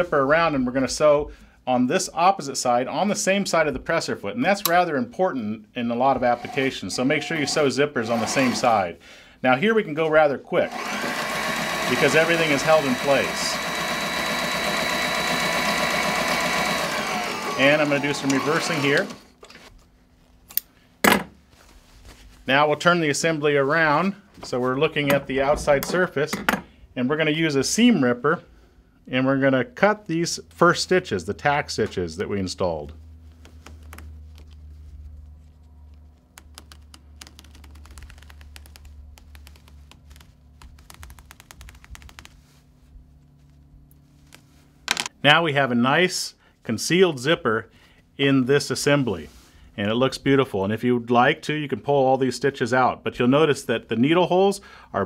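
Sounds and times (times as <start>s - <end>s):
sewing machine humming: 6.1s - 8.9s, 10.6s - 19.7s.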